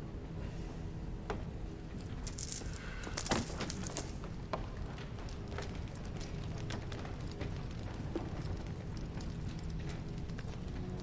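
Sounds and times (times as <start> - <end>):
small metal pieces jangling: 2.1 - 4.2.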